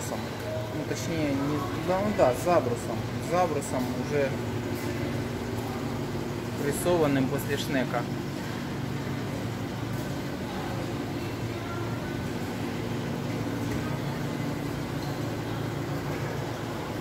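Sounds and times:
low hum of machinery: 0:00.0 - 0:17.0.

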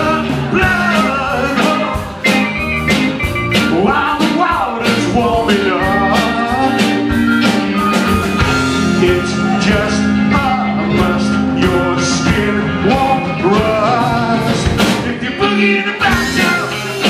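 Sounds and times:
bending lead guitar line: 0:00.0 - 0:17.0
live blues-rock band: 0:00.0 - 0:17.0.

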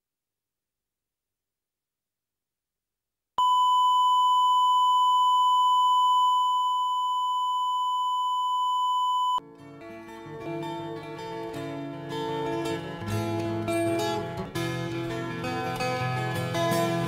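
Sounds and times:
steady test tone beep: 0:03.4 - 0:09.4
plucked-string music: 0:09.4 - 0:17.0.

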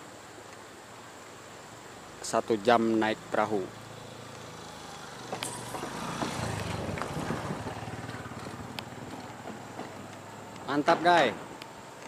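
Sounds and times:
motorcycle engine running: 0:03.8 - 0:09.8
sharp knocks on wooden bridge: 0:05.2 - 0:10.2, 0:10.8 - 0:11.6.

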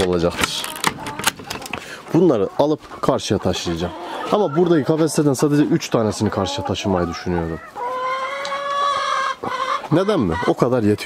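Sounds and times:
chicken calling: 0:00.5 - 0:11.0.

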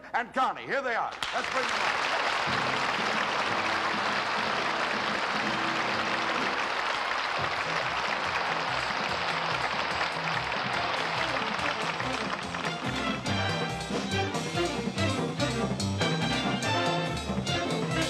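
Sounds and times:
audience applauding: 0:01.1 - 0:14.5
band playing: 0:02.4 - 0:18.0.

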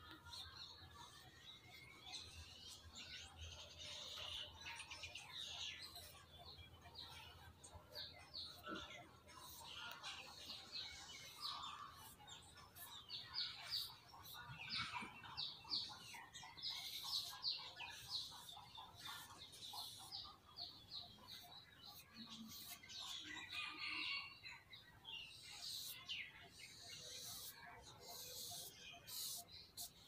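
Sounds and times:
small birds chirping: 0:00.0 - 0:30.0.

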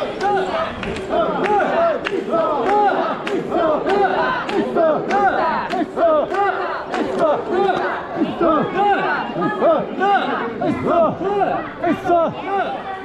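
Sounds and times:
people chanting together: 0:00.0 - 0:13.0.

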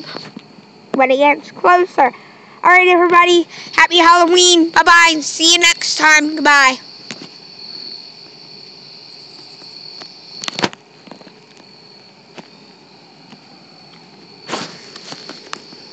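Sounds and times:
crickets chirping: 0:00.0 - 0:15.9
short rustle: 0:14.4 - 0:15.8.

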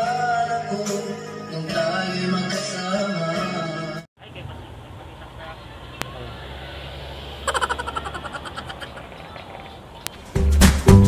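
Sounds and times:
vehicle engine hum: 0:04.2 - 0:10.4
rapid pulsing: 0:04.3 - 0:10.3.

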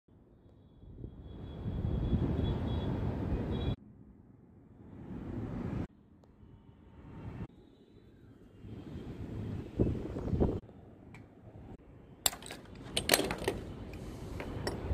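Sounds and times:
wind buffeting microphone: 0:09.2 - 0:10.6.

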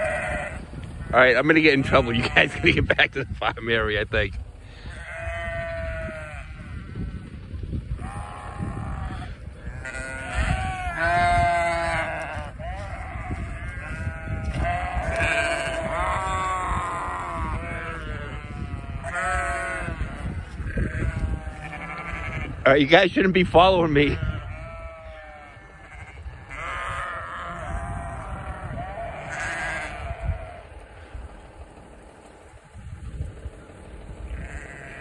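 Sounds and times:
sheep bleating: 0:00.0 - 0:03.3, 0:04.7 - 0:07.3, 0:07.9 - 0:22.7, 0:24.0 - 0:31.1, 0:34.3 - 0:35.0.

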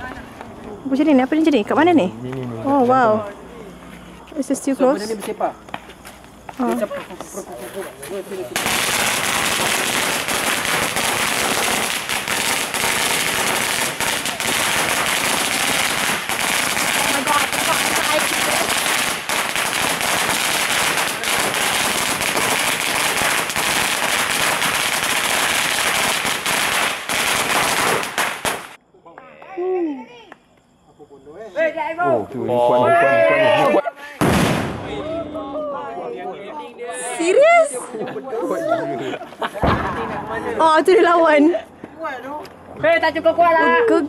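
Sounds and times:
firecrackers crackling: 0:05.6 - 0:28.8, 0:34.2 - 0:35.1
young people calling out: 0:31.6 - 0:34.0, 0:34.9 - 0:39.2.

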